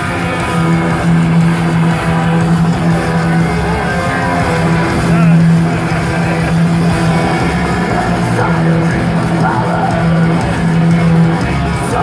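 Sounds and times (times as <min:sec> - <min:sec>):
distorted electric guitars: 0:00.0 - 0:12.0
heavy metal band playing: 0:00.0 - 0:12.0.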